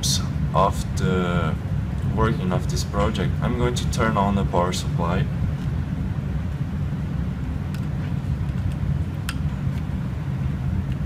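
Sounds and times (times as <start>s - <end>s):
low rumble of room noise: 0.0s - 11.0s.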